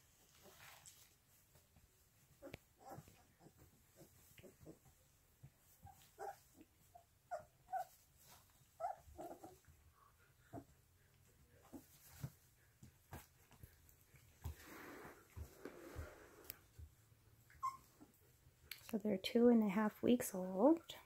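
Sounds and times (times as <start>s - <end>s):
puppies whimpering and squeaking: 2.4s - 5.0s, 5.7s - 9.8s, 17.4s - 18.2s
faint scuffling: 11.5s - 17.0s.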